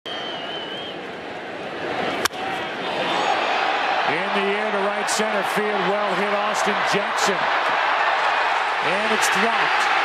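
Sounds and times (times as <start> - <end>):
ballpark crowd noise: 0.1 - 10.0.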